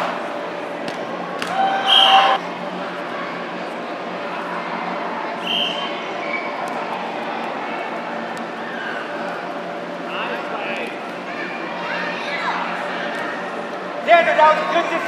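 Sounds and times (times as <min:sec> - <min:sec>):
steady hall hum: 0:00.0 - 0:15.0.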